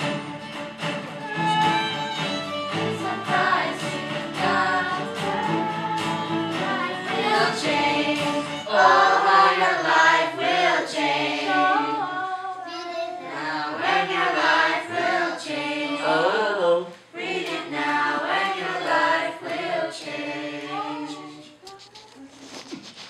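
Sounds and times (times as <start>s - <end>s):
children singing: 1.4s - 21.6s.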